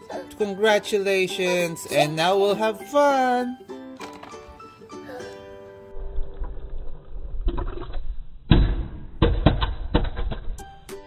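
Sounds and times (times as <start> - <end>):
background music: 0.0 - 6.4, 10.4 - 11.0.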